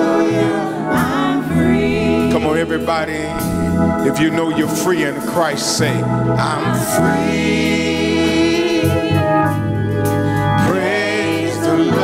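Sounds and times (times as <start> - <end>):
man singing gospel: 0.0 - 9.3, 10.4 - 12.0
low accompaniment: 0.0 - 12.0.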